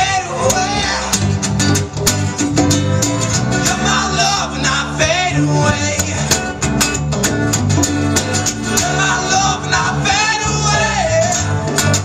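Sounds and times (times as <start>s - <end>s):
bass guitar: 0.0s - 12.0s
conga drums: 0.0s - 12.0s
strummed acoustic guitar: 0.0s - 12.0s.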